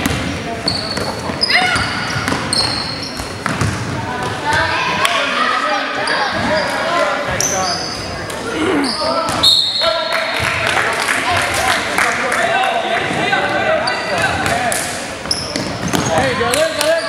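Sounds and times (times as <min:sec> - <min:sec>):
sneaker squeaks: 0:00.0 - 0:03.8, 0:06.0 - 0:09.9, 0:13.8 - 0:14.4, 0:15.2 - 0:17.0
basketball bouncing on gym floor: 0:00.0 - 0:04.6
people shouting and talking: 0:00.0 - 0:17.0.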